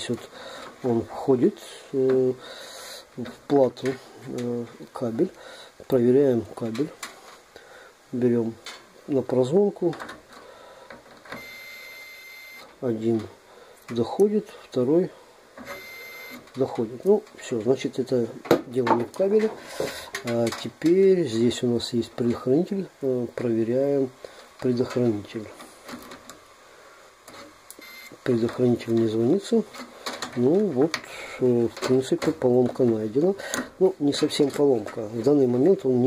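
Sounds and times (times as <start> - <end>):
multimeter continuity beep: 11.3 - 12.7, 15.6 - 16.5, 27.7 - 28.3
short high beep: 11.4 - 12.6.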